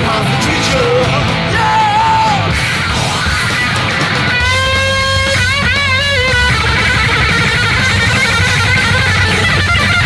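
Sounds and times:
rock band playing live: 0:00.0 - 0:10.0
person yelling vocals: 0:00.6 - 0:02.6.

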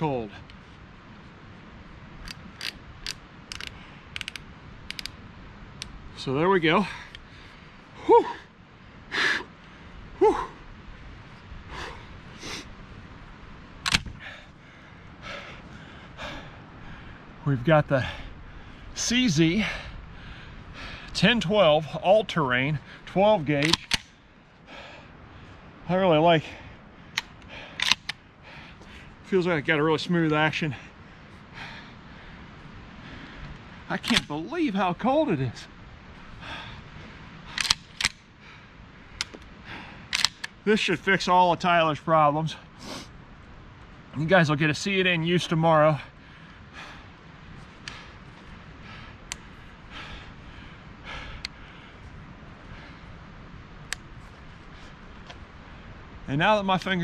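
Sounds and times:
shotgun action clicking: 0:02.2 - 0:05.2, 0:13.8 - 0:14.1, 0:23.6 - 0:24.1, 0:27.2 - 0:28.2, 0:37.5 - 0:38.2, 0:40.1 - 0:40.6.

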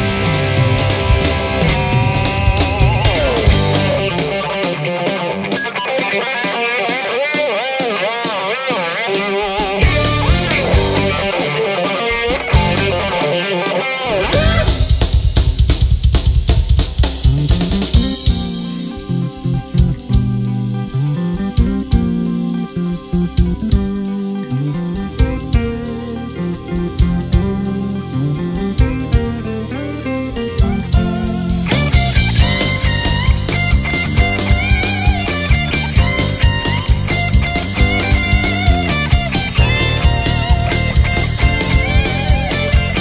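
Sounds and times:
low repeated guitar riff: 0:00.0 - 0:15.1, 0:17.3 - 0:43.0
lead electric guitar: 0:00.0 - 0:15.7, 0:17.2 - 0:43.0
drum kit: 0:00.0 - 0:43.0.

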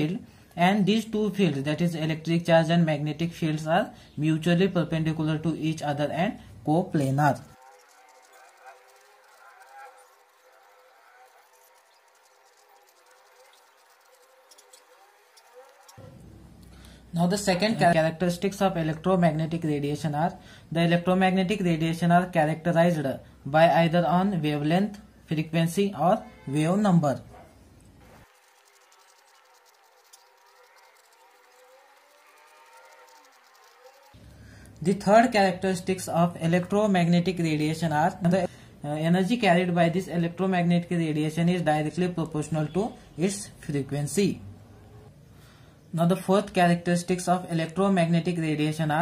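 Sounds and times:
marker scratching on paper: 0:06.9 - 0:16.0, 0:27.4 - 0:34.2.

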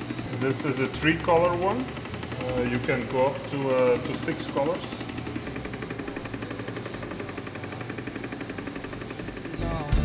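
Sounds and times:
machine rattling rapidly: 0:00.0 - 0:09.9
music with gliding guitar notes: 0:09.6 - 0:10.0.

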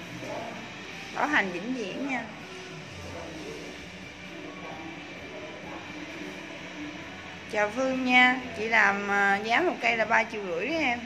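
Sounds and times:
quiet background music: 0:00.0 - 0:11.0
room noise hum: 0:00.0 - 0:11.0.

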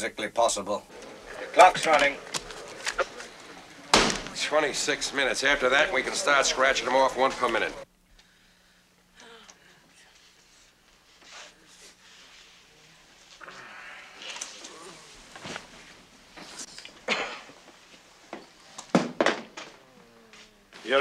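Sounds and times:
faint indistinct voices: 0:00.9 - 0:07.9.

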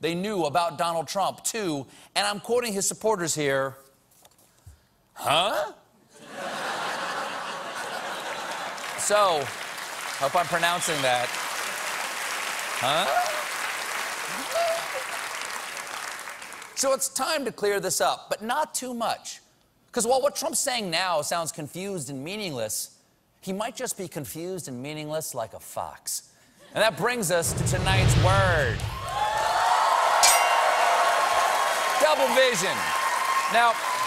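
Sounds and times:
audience applause: 0:07.8 - 0:16.8, 0:29.0 - 0:34.0
whooshing hiss: 0:27.3 - 0:29.4
steady tone: 0:27.4 - 0:29.3
bright clink: 0:30.2 - 0:31.1.

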